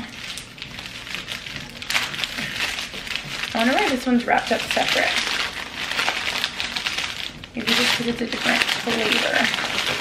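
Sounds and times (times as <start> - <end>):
paper wrapping crinkling: 0.0 - 10.0.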